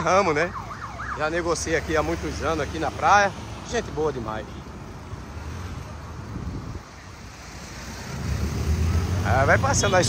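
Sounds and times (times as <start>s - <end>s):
wind rumbling on microphone: 6.0s - 6.9s.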